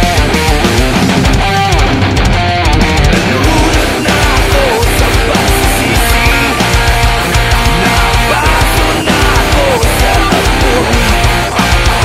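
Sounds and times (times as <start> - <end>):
distorted electric guitar riff: 0.0 - 12.0
rock band backing track: 0.0 - 12.0.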